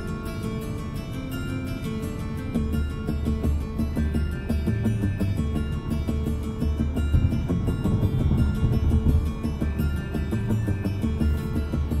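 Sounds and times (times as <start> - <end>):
music with heavy bass in car: 0.0 - 12.0.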